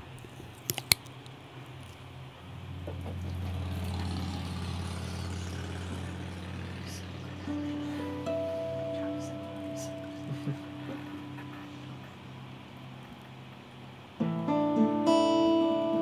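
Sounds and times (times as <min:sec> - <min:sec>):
steady low hum: 0:00.0 - 0:14.3
acoustic guitar picked notes: 0:05.7 - 0:16.0.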